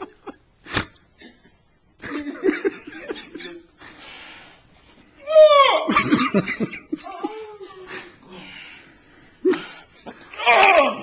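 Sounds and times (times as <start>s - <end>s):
man laughing hard: 5.9s - 8.0s.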